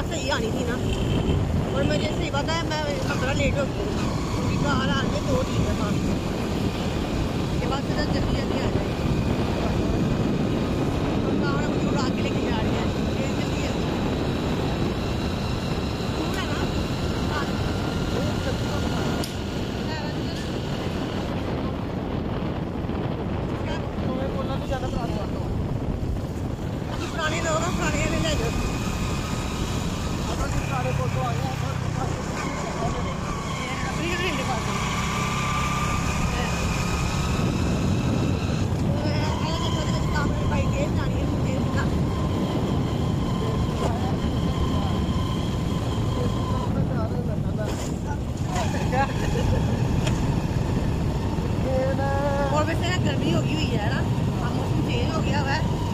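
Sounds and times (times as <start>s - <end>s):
motorcycle running: 0.0s - 55.9s
wind rushing over microphone: 0.0s - 55.9s.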